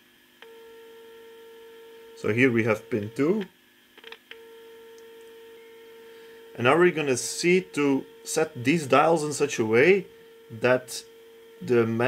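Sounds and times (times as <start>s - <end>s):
loudspeaker steady tone: 2.2s - 3.4s, 5.4s - 12.0s.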